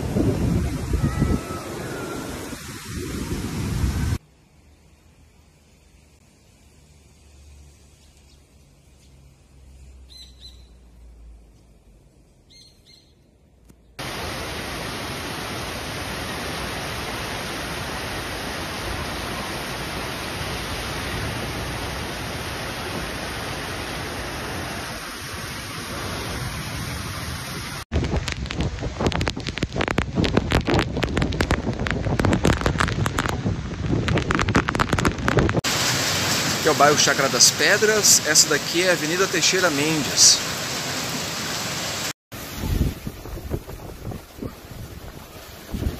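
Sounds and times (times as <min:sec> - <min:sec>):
gusting wind: 0:00.0 - 0:04.2, 0:14.0 - 0:38.9, 0:40.0 - 0:45.9
wind buffeting microphone: 0:00.0 - 0:04.2, 0:24.7 - 0:35.7, 0:42.4 - 0:45.9
heavy rain hissing: 0:00.0 - 0:10.2, 0:14.0 - 0:45.9
faint bird chirps: 0:10.0 - 0:10.8, 0:12.4 - 0:13.2.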